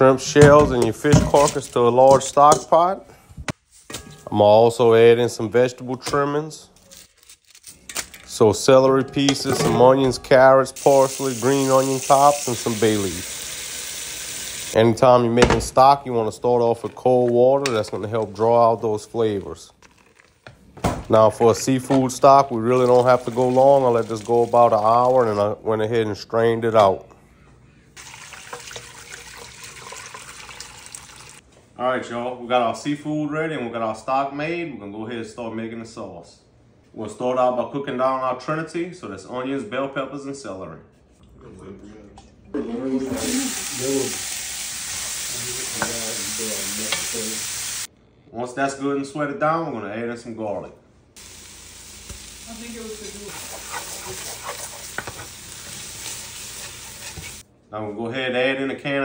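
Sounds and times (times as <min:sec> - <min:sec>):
vegetables sizzling in a pot: 0:10.8 - 0:14.8, 0:43.0 - 0:47.9, 0:51.2 - 0:57.4
liquid pouring through strainer: 0:28.0 - 0:31.4
wooden spoon scraping a pot: 0:53.0 - 0:57.4.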